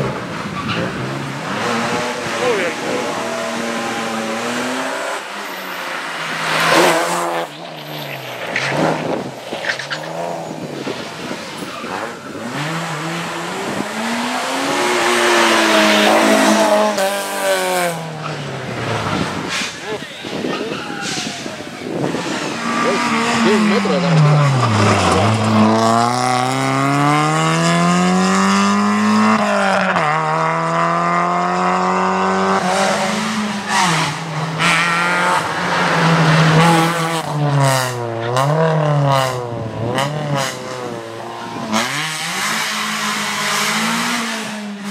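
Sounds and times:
rally car engines revving hard: 0.0 - 44.9.

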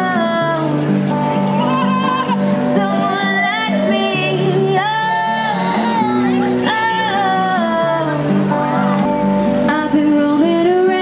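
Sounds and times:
woman singing: 0.0 - 0.9, 1.5 - 8.6, 9.6 - 11.0
acoustic guitar through amplifier: 0.0 - 11.0.

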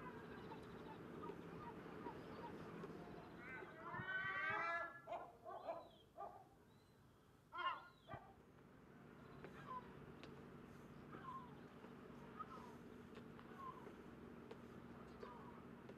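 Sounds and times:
low background hum: 0.0 - 15.9
animal calling: 7.5 - 8.3.

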